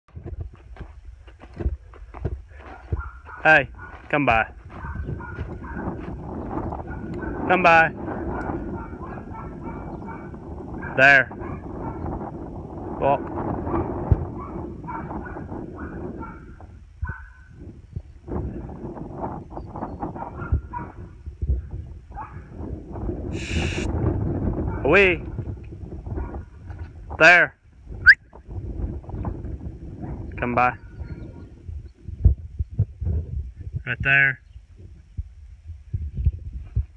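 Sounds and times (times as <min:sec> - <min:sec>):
wind buffeting microphone: 0:00.1 - 0:36.9.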